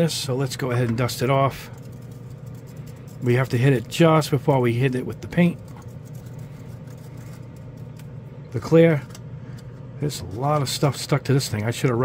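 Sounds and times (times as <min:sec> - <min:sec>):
exhaust fan humming: 0:00.0 - 0:12.0
brush scratching plastic: 0:01.2 - 0:08.1, 0:10.1 - 0:12.0.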